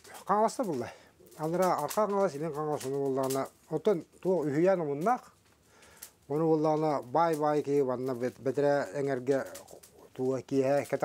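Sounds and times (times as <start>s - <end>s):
man talking: 0.0s - 5.4s, 6.3s - 11.0s.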